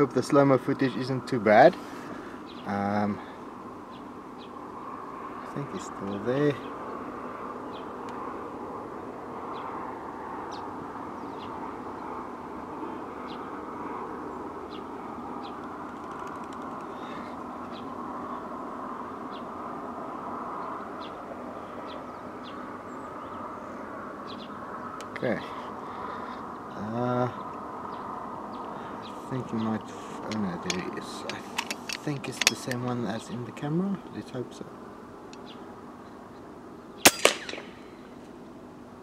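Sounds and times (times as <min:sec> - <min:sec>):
birds chirping: 0:00.0 - 0:38.7
steady background noise: 0:00.0 - 0:39.0.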